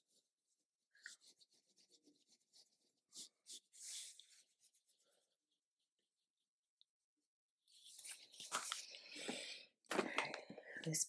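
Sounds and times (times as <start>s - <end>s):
makeup brush strokes on skin: 0.0s - 5.8s.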